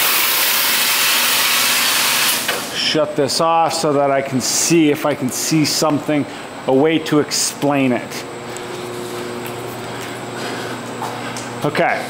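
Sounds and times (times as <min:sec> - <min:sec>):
machinery hum and rushing: 0:07.9 - 0:12.0.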